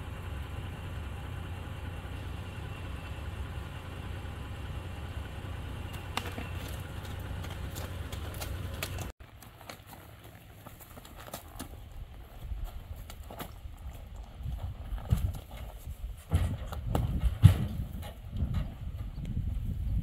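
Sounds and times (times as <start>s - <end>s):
horse hooves clopping: 5.2s - 19.6s
hooves thudding on trailer floor: 5.6s - 19.7s.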